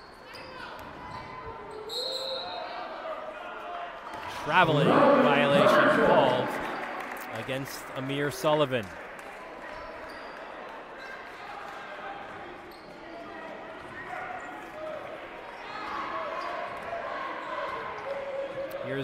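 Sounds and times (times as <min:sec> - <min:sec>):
crowd murmuring and calling out: 0:04.2 - 0:08.9.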